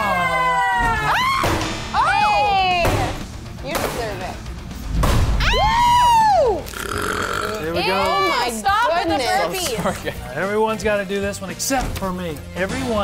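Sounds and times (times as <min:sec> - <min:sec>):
group whooping and cheering: 0:00.0 - 0:02.8, 0:05.4 - 0:06.8
background music: 0:00.0 - 0:13.0
low thud: 0:04.9 - 0:05.6.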